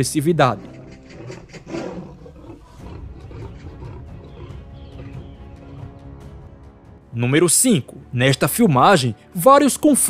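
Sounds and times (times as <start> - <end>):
big cats growling: 0.6 - 6.0.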